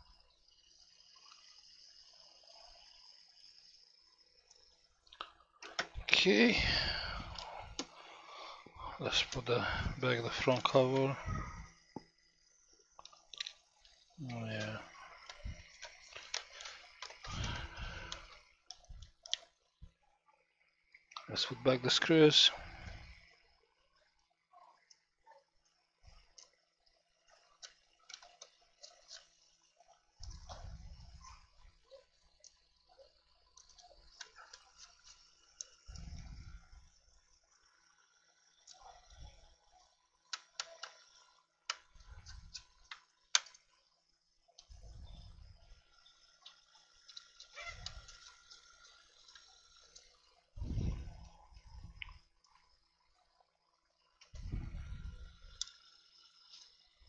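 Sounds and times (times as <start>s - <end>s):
screwdriver clicks and ticks: 4.4s - 6.1s, 11.8s - 19.5s, 33.5s - 43.8s.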